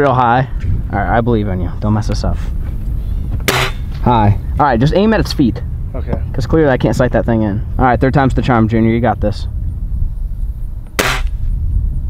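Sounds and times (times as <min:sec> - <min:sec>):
air rifle shot: 0:03.4 - 0:03.9, 0:10.9 - 0:11.5.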